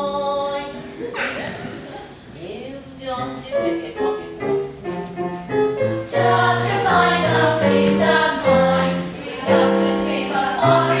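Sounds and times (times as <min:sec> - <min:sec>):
group singing with music: 0:00.0 - 0:01.9, 0:05.2 - 0:11.0.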